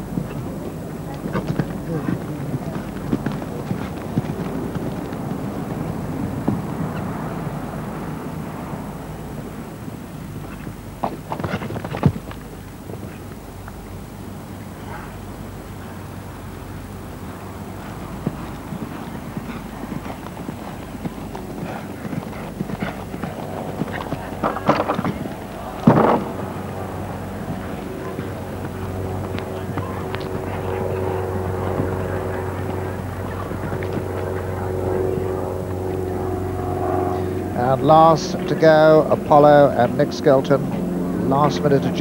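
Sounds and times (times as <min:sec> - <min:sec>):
horse hoofbeats on turf: 0:00.0 - 0:07.2, 0:10.4 - 0:13.4, 0:17.6 - 0:36.0.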